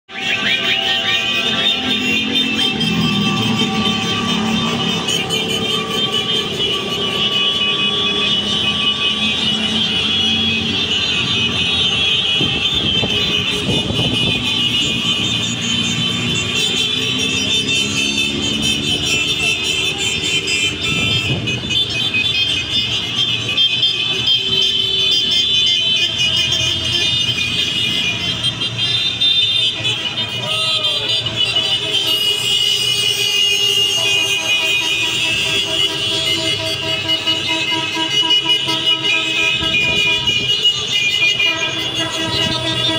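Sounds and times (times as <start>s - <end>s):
motorcycle and car engines revving: 0.1s - 22.7s.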